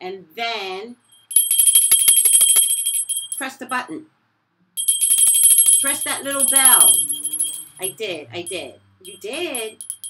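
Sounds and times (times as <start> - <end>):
hand bell ringing rapidly: 1.1 - 3.6, 4.8 - 10.0.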